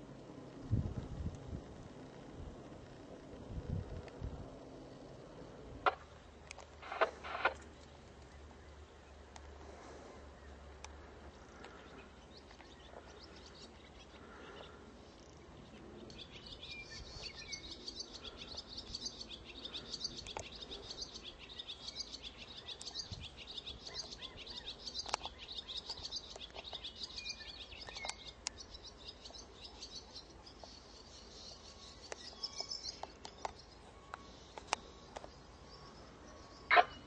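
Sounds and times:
birds chirping: 1.8 - 37.0.

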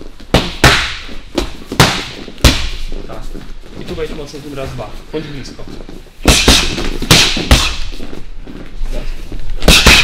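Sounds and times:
boxing gloves striking mitts: 0.2 - 2.9, 6.2 - 8.2, 9.6 - 10.0.

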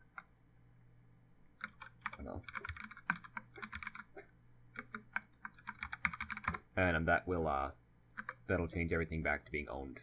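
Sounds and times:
computer keyboard typing: 1.6 - 6.6, 8.1 - 8.5.

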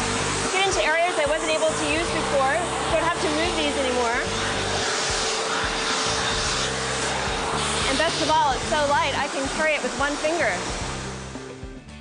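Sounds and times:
vacuum cleaner running: 0.0 - 11.7.

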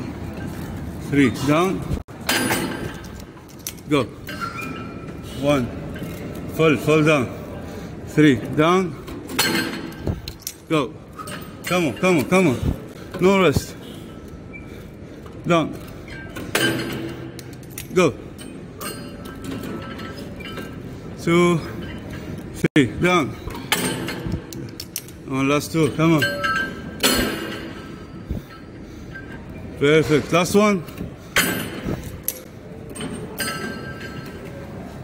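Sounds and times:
exercise machine metallic clank: 2.2 - 3.4, 9.1 - 10.4, 16.1 - 17.6, 23.5 - 24.8, 25.7 - 28.4, 29.9 - 34.4.

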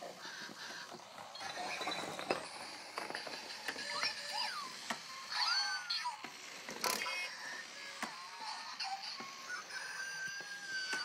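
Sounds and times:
toy hamsters squeaking chirps: 0.2 - 11.0.

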